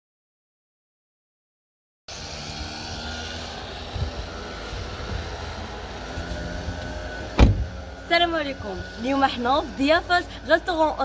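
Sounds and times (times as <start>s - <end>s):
van door shutting: 7.3s - 7.8s.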